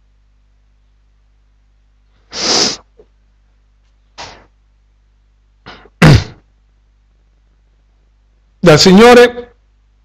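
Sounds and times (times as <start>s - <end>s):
person sneezing: 2.3s - 2.9s, 4.2s - 4.5s, 5.6s - 6.4s.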